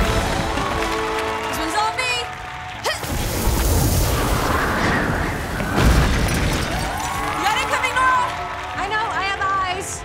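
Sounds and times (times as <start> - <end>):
booms and blasts: 3.0 - 6.9.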